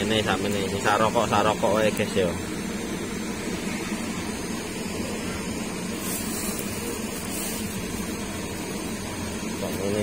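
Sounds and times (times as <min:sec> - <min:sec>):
high hiss: 0:00.0 - 0:10.0
machine droning: 0:00.0 - 0:10.0.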